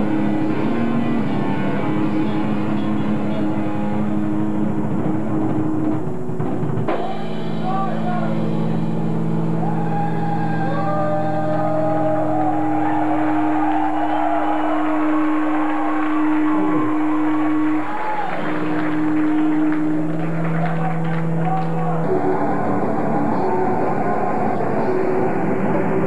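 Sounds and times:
metal band droning chord: 0.0s - 25.6s
people shouting: 9.6s - 19.5s.

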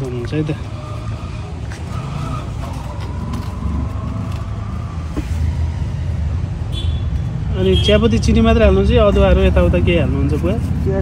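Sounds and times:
motor vehicle rumble: 0.0s - 11.0s.

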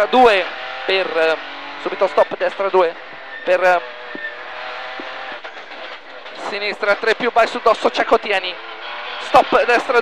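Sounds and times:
car engine whine: 0.0s - 10.0s.

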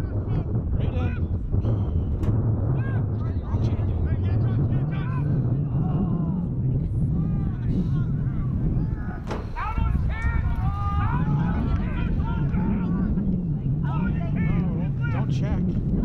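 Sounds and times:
steady low rumble: 0.0s - 16.0s
distant people shouting: 7.2s - 13.2s.

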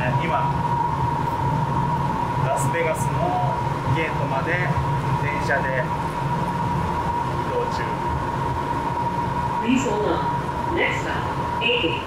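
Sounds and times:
train high whine: 0.0s - 12.0s
train low rumble: 0.0s - 12.0s.

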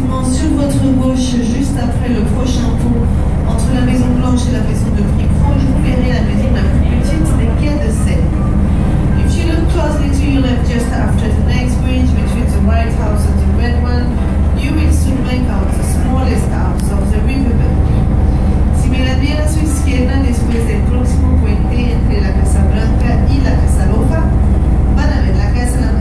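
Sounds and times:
boat engine drone: 0.0s - 26.0s
people talking: 0.0s - 26.0s.

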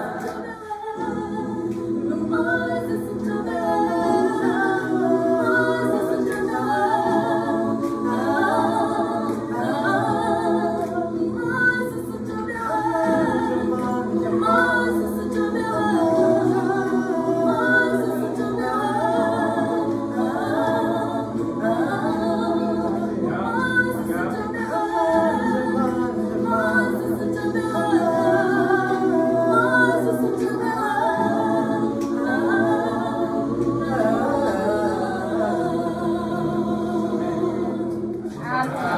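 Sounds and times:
gospel choir singing a cappella: 0.0s - 38.9s.

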